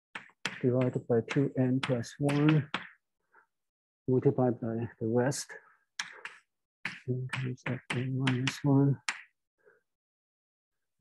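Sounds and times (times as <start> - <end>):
chalk tapping on chalkboard: 0.1 - 3.0, 6.0 - 9.4.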